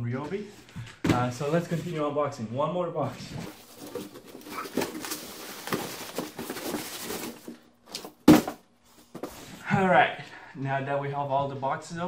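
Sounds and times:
cardboard boxes rustling and scraping: 3.3 - 9.6.

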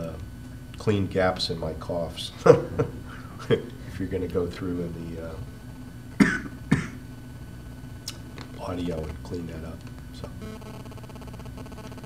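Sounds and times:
man coughing: 6.2 - 7.0.

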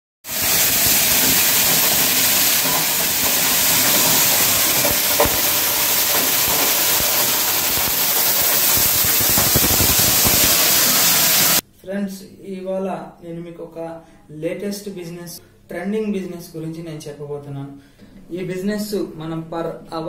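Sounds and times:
food processing machine hissing: 0.3 - 11.6.

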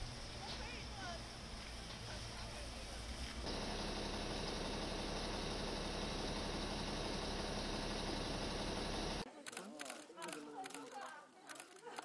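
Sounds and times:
road traffic noise: 0.0 - 9.3.

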